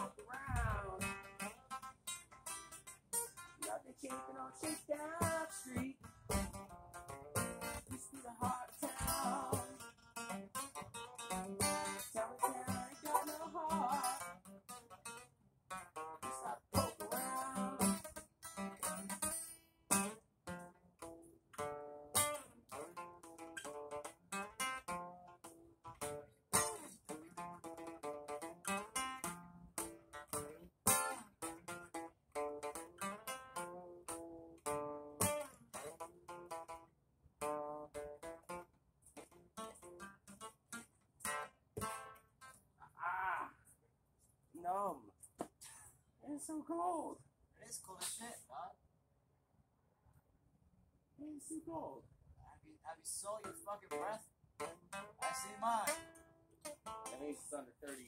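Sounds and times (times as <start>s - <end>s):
acoustic guitar strumming: 0.0s - 42.6s, 53.2s - 58.0s.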